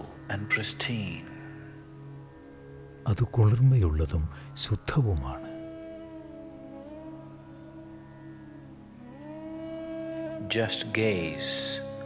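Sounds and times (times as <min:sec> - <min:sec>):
soft ambient music chords: 0:00.0 - 0:12.0.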